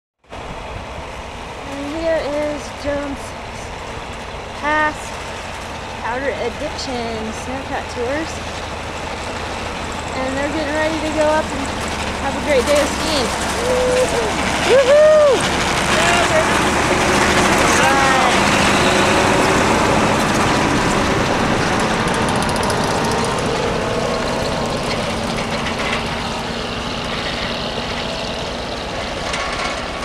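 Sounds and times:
snowcat engine running: 0.2s - 30.0s
tracks clattering: 0.4s - 30.0s
person whooping: 13.5s - 16.3s.

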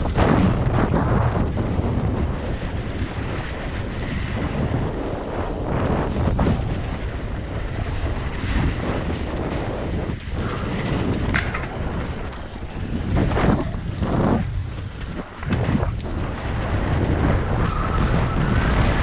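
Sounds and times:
bike tyres rumbling over dirt: 0.0s - 19.0s
wind buffeting microphone: 0.0s - 19.0s.

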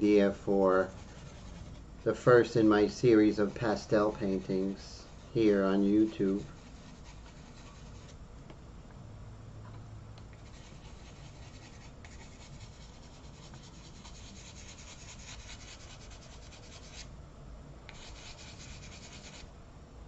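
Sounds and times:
pencil rubbing across paper: 0.6s - 1.9s, 2.8s - 8.2s, 10.4s - 17.1s, 17.9s - 19.5s.

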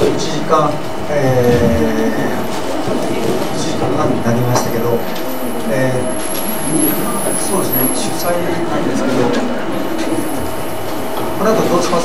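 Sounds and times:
man speaking over pa system: 0.0s - 2.6s, 3.4s - 9.6s, 11.4s - 12.0s
hall background hum: 0.0s - 12.0s.

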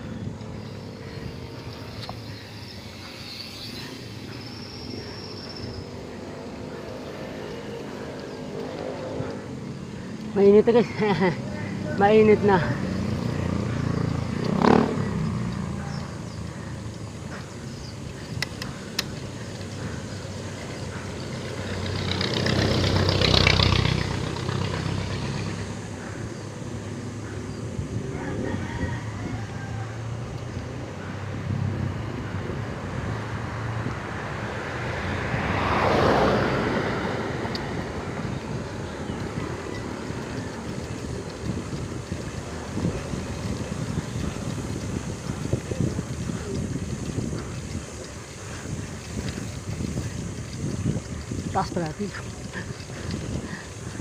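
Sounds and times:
motor vehicles passing: 0.0s - 54.0s
wind and road noise: 0.0s - 54.0s.

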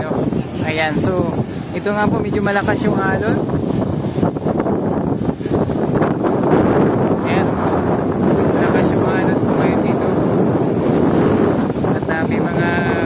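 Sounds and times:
waves breaking against seawall: 0.0s - 13.0s
wind buffeting microphone: 0.0s - 13.0s.

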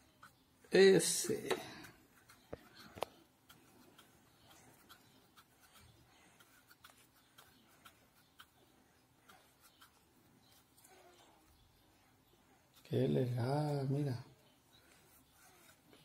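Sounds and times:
brush tapping and scratching paper: 1.0s - 10.8s.

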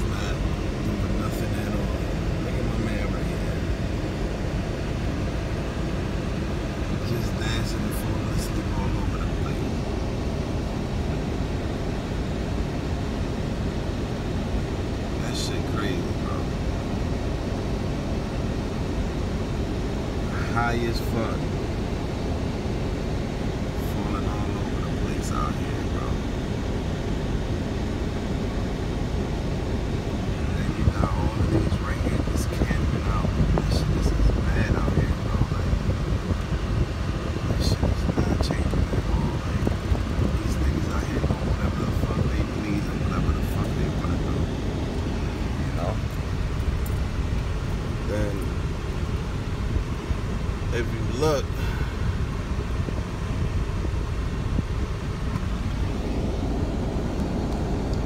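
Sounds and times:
car engine and tyres rumbling: 0.0s - 58.0s.

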